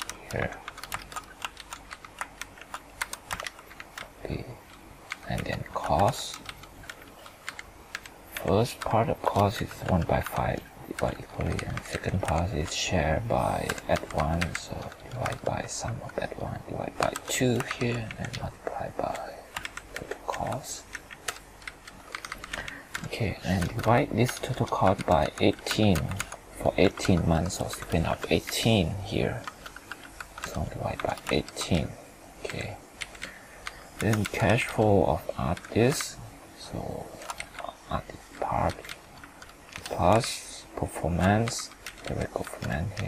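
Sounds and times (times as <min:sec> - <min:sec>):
fast typing on computer keyboard: 0:00.0 - 0:43.0.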